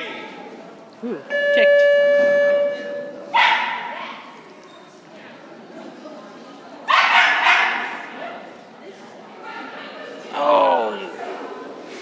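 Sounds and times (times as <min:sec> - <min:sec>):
loud buzzer tone: 0:01.3 - 0:03.2
dog barking: 0:03.3 - 0:04.2, 0:06.9 - 0:08.0.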